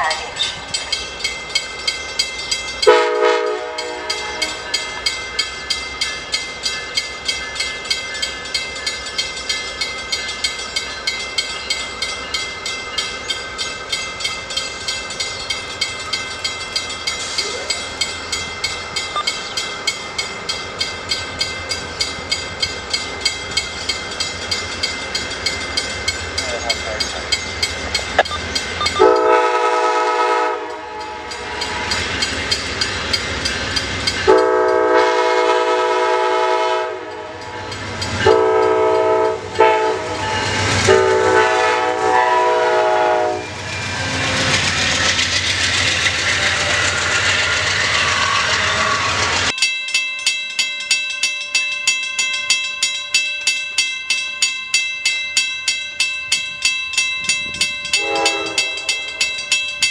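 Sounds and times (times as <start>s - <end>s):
train rushing past: 0.0s - 49.6s
locomotive air horn blasts: 2.9s - 4.7s, 29.0s - 31.3s, 34.3s - 37.4s, 38.2s - 40.2s, 40.9s - 43.6s, 58.0s - 59.0s.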